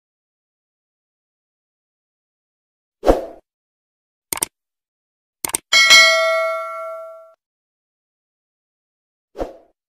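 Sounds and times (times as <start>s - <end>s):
notification bell ding: 5.7s - 7.4s.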